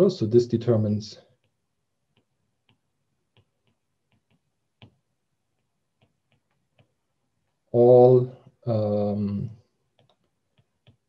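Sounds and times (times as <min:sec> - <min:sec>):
stylus tapping on tablet screen: 0:01.3 - 0:07.7, 0:09.8 - 0:11.0.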